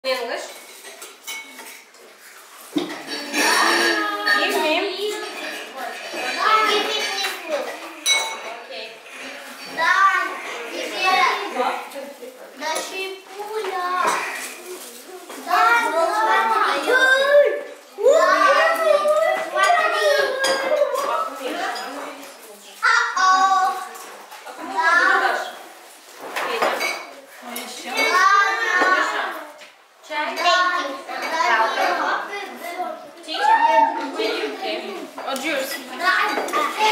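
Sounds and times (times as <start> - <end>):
dishes and glasses clinking: 0.4 - 2.1, 2.7 - 11.5, 13.6 - 14.5, 19.3 - 22.0, 26.3 - 29.2
children talking: 2.6 - 25.8, 26.4 - 36.9.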